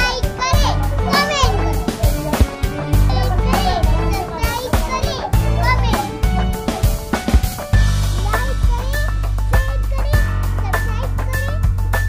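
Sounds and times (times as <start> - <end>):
girl speaking animatedly: 0.0 - 2.4, 3.0 - 6.3, 8.2 - 11.6
background music with bass line: 0.0 - 12.0.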